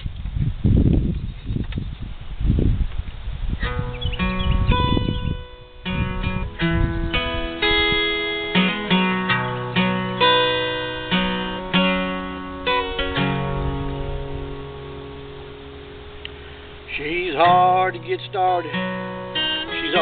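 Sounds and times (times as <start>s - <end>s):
acoustic guitar chords: 3.6s - 20.0s.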